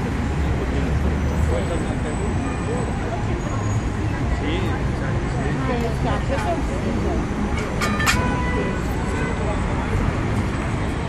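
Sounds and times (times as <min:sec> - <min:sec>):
people talking: 0:00.0 - 0:10.4
low traffic rumble: 0:00.0 - 0:11.0.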